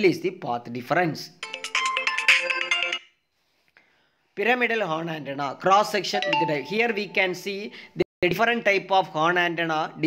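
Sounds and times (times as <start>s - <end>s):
bright electronic chime: 6.2s - 7.7s.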